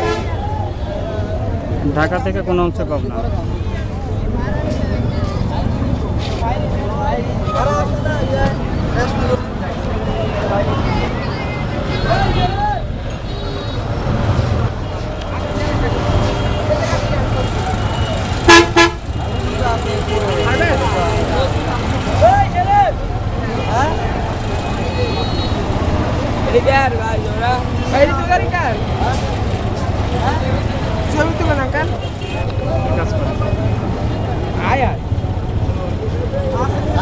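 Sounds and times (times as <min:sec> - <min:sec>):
people talking: 0:00.0 - 0:13.0, 0:15.0 - 0:18.4, 0:19.1 - 0:37.0
vehicle horn: 0:18.0 - 0:19.2.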